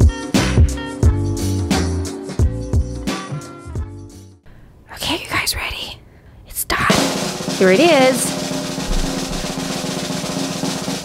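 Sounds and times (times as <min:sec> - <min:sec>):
snare drum roll: 0:06.9 - 0:11.0.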